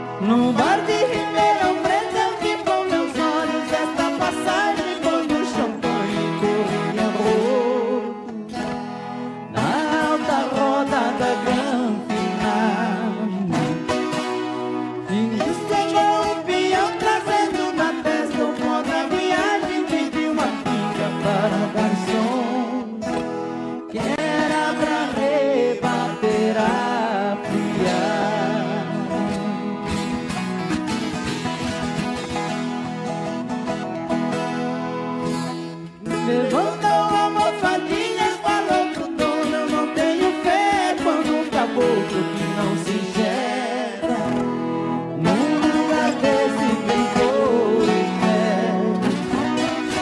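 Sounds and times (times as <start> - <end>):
man singing: 0.0 - 30.3, 36.0 - 50.0
strummed guitars: 0.0 - 50.0.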